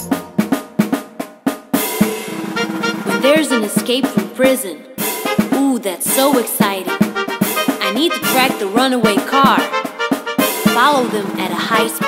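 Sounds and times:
pop backing music: 0:00.0 - 0:00.7, 0:05.5 - 0:12.0
drum hits: 0:00.0 - 0:04.4.

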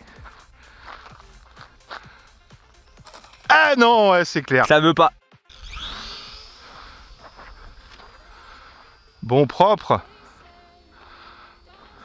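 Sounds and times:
electric motor and propeller whining: 0:00.0 - 0:12.0.

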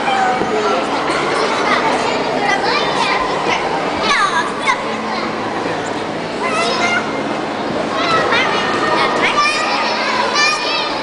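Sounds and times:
children calling and chattering: 0:00.0 - 0:11.0
hubbub of voices: 0:00.0 - 0:11.0.

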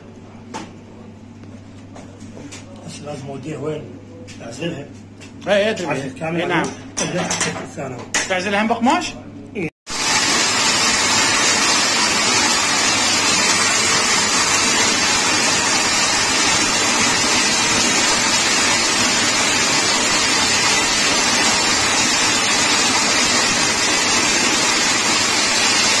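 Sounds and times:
winding machine whirring: 0:09.9 - 0:26.0.

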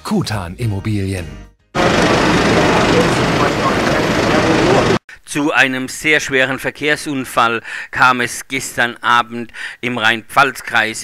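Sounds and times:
vehicle engines idling: 0:01.8 - 0:05.0.

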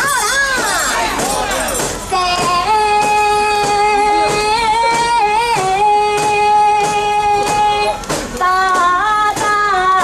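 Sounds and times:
sharp percussion strikes: 0:00.0 - 0:09.9.

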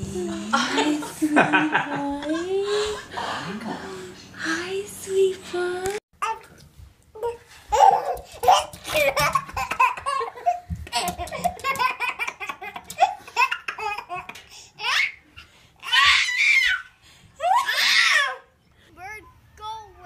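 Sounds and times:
baby laughing: 0:07.7 - 0:15.2.

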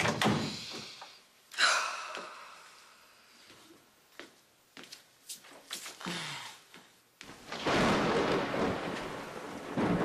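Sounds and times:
steady rain: 0:07.3 - 0:10.0
rumbling thunder: 0:07.4 - 0:10.0.

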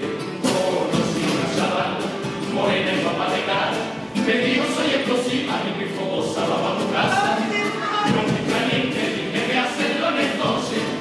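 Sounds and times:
choir singing in harmony: 0:00.0 - 0:11.0
guitar accompaniment: 0:00.0 - 0:11.0.

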